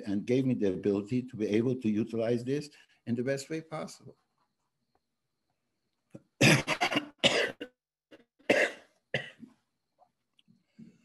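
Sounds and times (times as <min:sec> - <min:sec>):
elderly man coughing: 0:06.3 - 0:07.8, 0:08.4 - 0:09.5.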